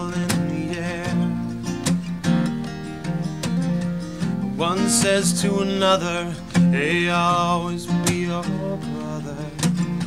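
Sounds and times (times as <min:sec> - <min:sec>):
person singing: 0:00.0 - 0:01.5, 0:04.6 - 0:10.0
acoustic guitar strumming: 0:00.0 - 0:10.0.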